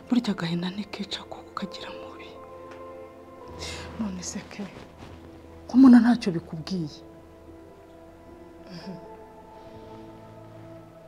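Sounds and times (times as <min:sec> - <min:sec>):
soft background music: 0:00.0 - 0:11.0
woman whispering: 0:00.4 - 0:02.4.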